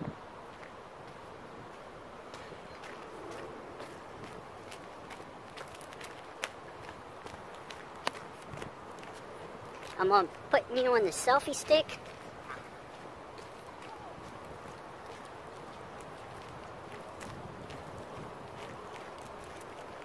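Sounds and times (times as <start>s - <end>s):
footsteps on gravel: 0.5s - 20.0s.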